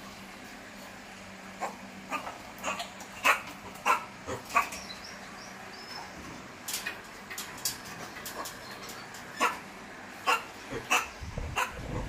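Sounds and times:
monkey barking calls: 1.6 - 6.2, 9.3 - 12.0.

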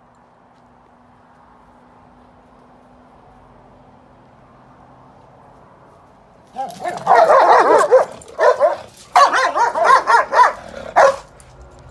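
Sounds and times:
dog yelping and barking: 6.5 - 11.3.

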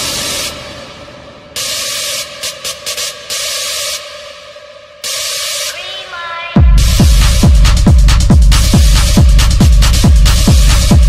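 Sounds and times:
white-noise hiss bursts: 0.0 - 3.9.

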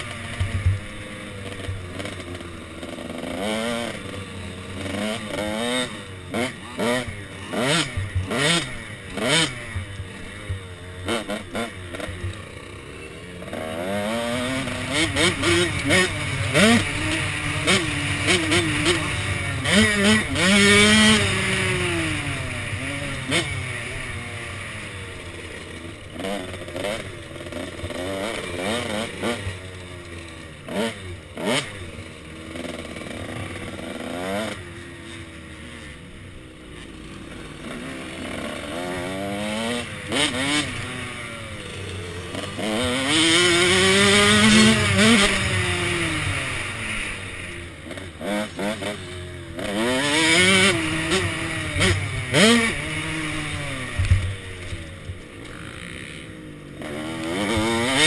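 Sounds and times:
dirt bike engine revving: 0.0 - 58.0.

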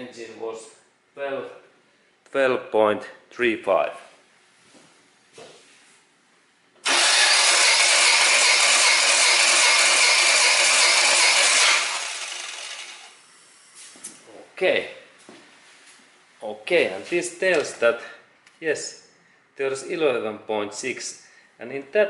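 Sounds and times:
engine cranking by starter motor: 6.8 - 13.2.

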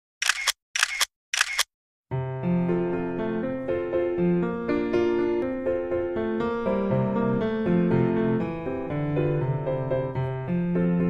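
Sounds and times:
mechanical clicking bursts: 0.2 - 1.7.

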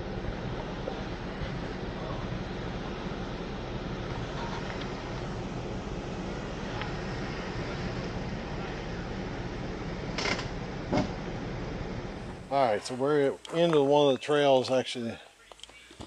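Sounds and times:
rushing noise: 0.0 - 13.0
engines rumbling at crawling speed: 0.0 - 16.0.

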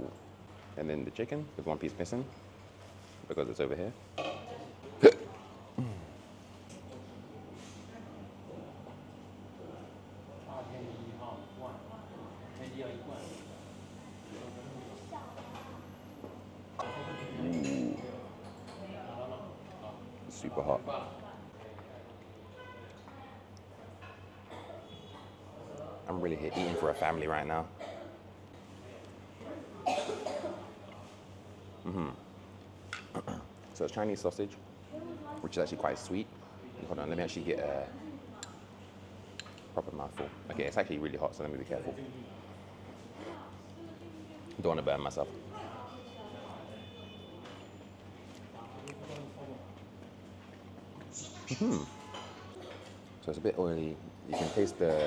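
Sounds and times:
person coughing: 5.0 - 6.1, 29.8 - 30.6, 51.4 - 52.0, 54.3 - 54.8.

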